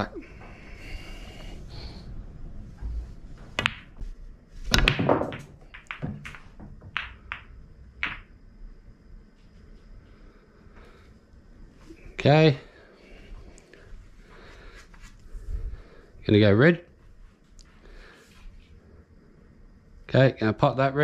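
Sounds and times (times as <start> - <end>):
cue tip hitting ball: 3.4 - 4.1, 4.7 - 8.3
pool balls knocking: 3.4 - 4.1, 4.7 - 8.4
pool balls clicking: 3.4 - 8.4.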